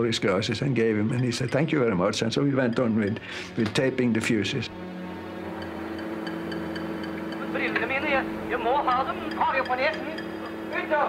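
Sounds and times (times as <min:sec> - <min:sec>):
low machinery hum: 0:02.3 - 0:11.0.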